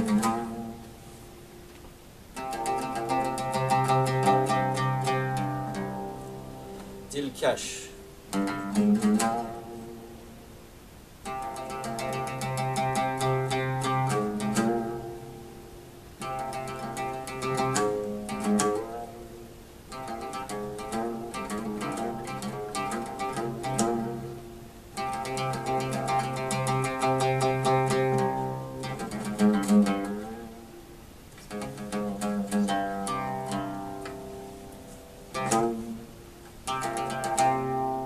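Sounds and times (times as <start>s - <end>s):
plucked oud melody: 0.0s - 38.0s.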